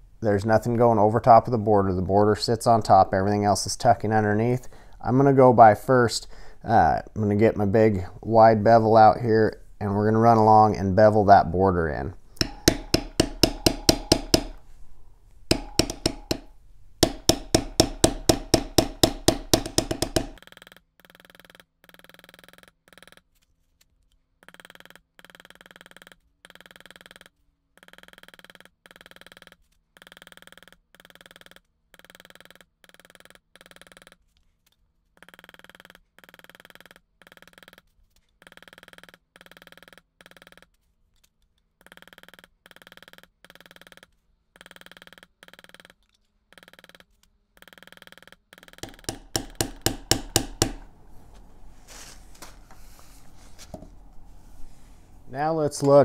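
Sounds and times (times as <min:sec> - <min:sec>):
mallet tapping steel tool: 0:12.4 - 0:14.7, 0:15.5 - 0:20.4, 0:48.6 - 0:50.9.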